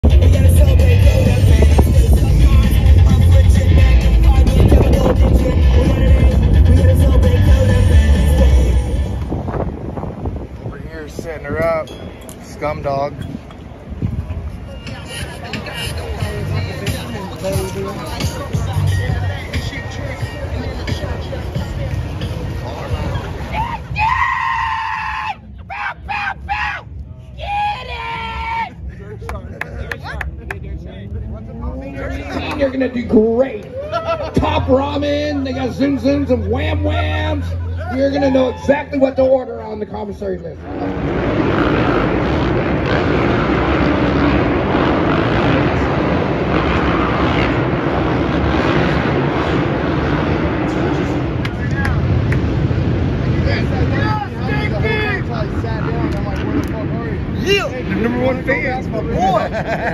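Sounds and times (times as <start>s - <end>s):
dirt bike engines running: 28.9s - 59.9s.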